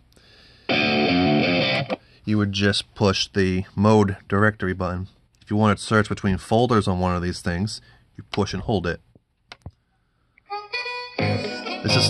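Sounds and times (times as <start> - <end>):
music from boombox speakers: 10.5 - 12.0.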